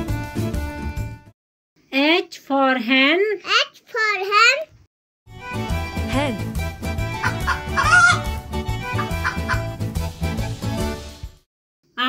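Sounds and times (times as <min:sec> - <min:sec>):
background music with beat: 0:00.0 - 0:01.3, 0:05.3 - 0:11.4
chickens clucking: 0:07.2 - 0:09.8.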